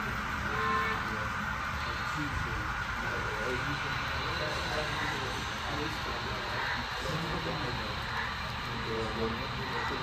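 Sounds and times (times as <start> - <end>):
indistinct voices: 0.0 - 10.0
model train whirring on track: 0.0 - 10.0.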